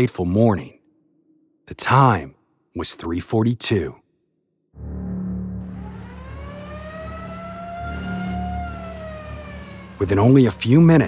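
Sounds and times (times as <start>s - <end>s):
fire engine siren wailing: 4.8s - 11.0s
low engine rumble: 5.1s - 11.0s.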